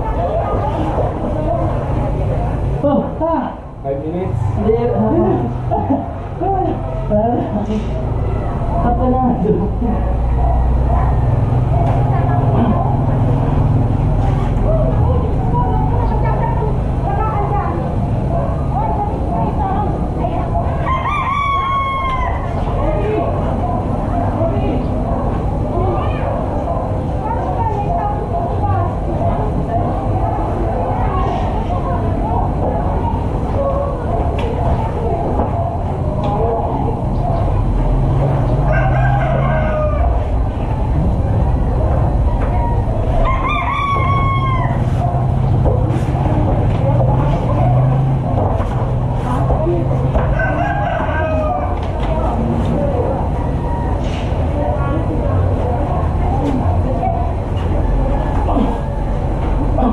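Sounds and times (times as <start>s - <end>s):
rooster crowing: 20.7s - 22.7s, 38.6s - 40.4s, 43.2s - 45.2s, 50.2s - 51.9s
steady low rumble: 39.7s - 43.3s.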